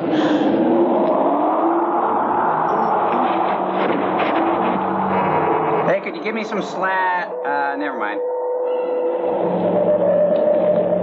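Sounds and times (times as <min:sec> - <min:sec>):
faint wavering tones: 0:00.0 - 0:11.0.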